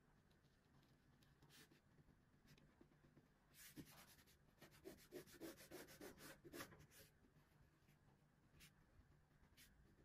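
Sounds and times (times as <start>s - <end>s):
ballpoint pen scratching paper: 3.6s - 7.1s.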